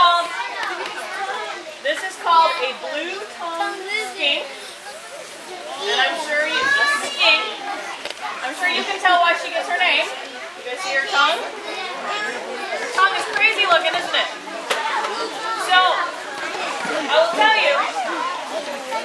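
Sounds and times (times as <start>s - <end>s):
children chattering: 0.0s - 19.0s.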